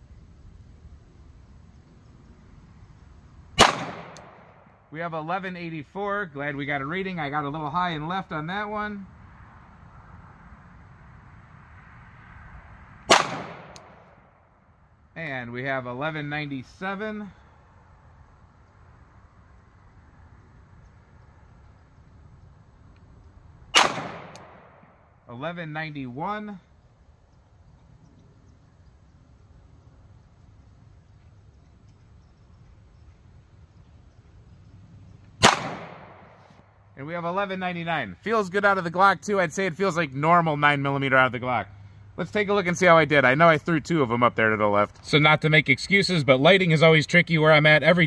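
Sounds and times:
faint low background rumble: 0.0s - 48.0s
pistol shot with echo: 3.6s - 4.7s, 13.1s - 14.2s, 23.8s - 25.0s, 35.4s - 36.4s.

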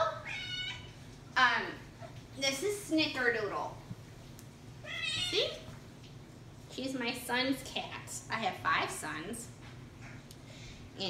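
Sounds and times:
cat meowing: 0.2s - 0.9s, 4.8s - 5.6s.

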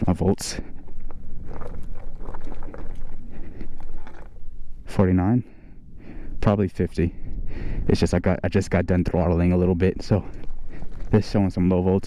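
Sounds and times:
tyres crunching on gravel: 0.0s - 4.4s, 9.5s - 12.0s
wind buffeting microphone: 0.0s - 12.0s.

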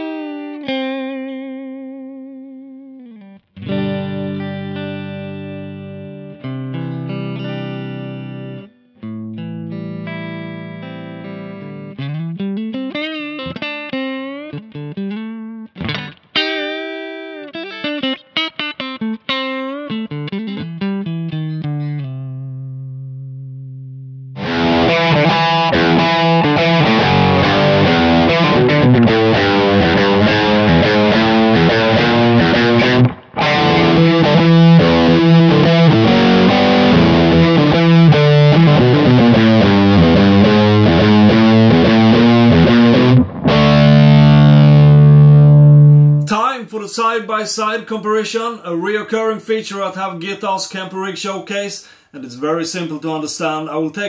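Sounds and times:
distorted electric guitar: 0.0s - 46.4s
electric guitar with string bends: 0.0s - 52.2s.

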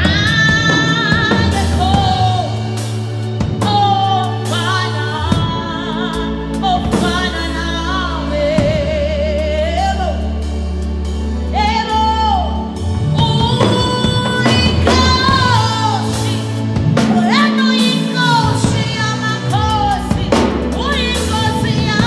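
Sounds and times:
sustained low instrumental chords: 0.0s - 22.0s
woman singing with vibrato: 0.0s - 22.0s.

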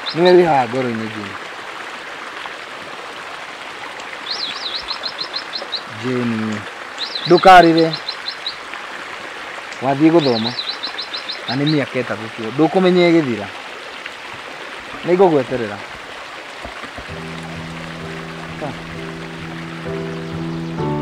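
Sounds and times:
bird singing high phrase: 0.0s - 0.5s, 4.2s - 8.6s, 9.8s - 12.0s, 17.1s - 21.0s.

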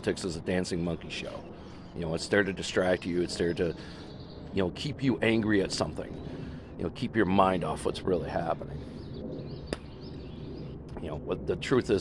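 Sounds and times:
birds chirping faintly: 0.0s - 12.0s
low outdoor rumble: 0.0s - 12.0s.

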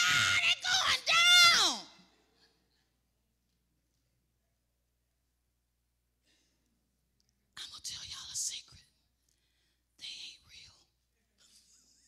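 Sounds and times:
woman whispering: 7.5s - 9.1s, 10.0s - 11.1s.

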